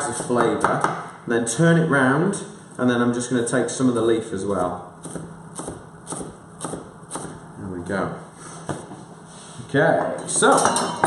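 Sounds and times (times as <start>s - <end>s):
knife chopping on wooden board: 4.6s - 7.4s.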